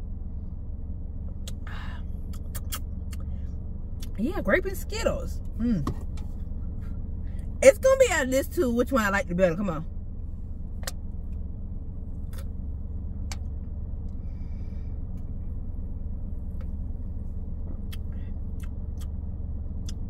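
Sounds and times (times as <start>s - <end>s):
car cabin hum: 0.0s - 20.0s.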